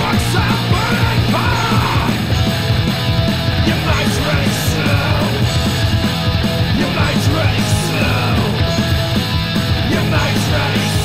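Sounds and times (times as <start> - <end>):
shouted lead vocals: 0.0 - 11.0
thrash metal band playing: 0.0 - 11.0.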